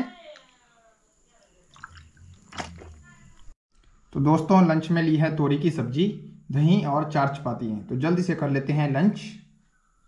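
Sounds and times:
water sloshing in bottle: 0:01.6 - 0:03.6
person swallowing: 0:01.8 - 0:03.0.

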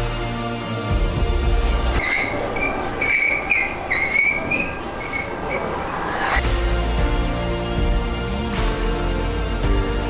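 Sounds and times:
high-pitched wavering squeal: 0:02.1 - 0:06.5.

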